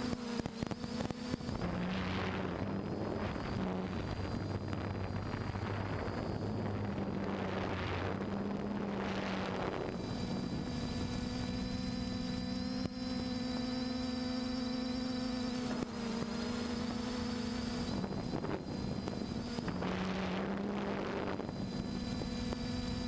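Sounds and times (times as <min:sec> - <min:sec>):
drone propellers humming: 0:00.0 - 0:23.0
wind noise on microphone: 0:01.4 - 0:12.9, 0:16.8 - 0:23.0.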